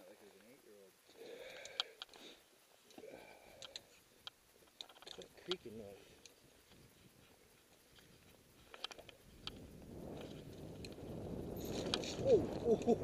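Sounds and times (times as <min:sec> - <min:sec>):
bike clicks and rattles: 0:03.5 - 0:13.0.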